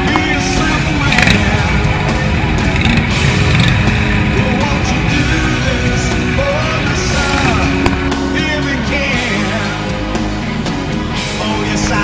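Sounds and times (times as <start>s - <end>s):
motorcycle engines running: 0.0s - 8.2s, 10.4s - 12.0s
music playing: 0.0s - 12.0s.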